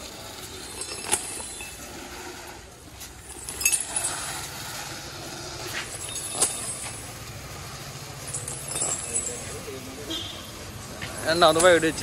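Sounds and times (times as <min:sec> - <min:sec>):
metallic chain clinks: 0:00.0 - 0:10.1.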